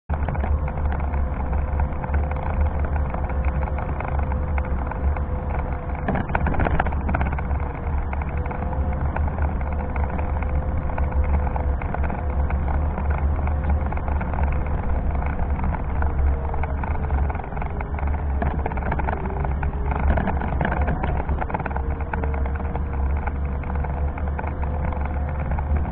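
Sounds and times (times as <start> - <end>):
heavy low rumble: 0.0 - 25.9
electric wheelchair motor whine: 0.1 - 25.9.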